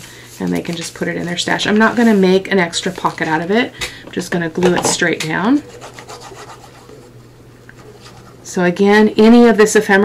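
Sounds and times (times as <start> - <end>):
glue stick rubbing on paper: 5.6 - 7.1.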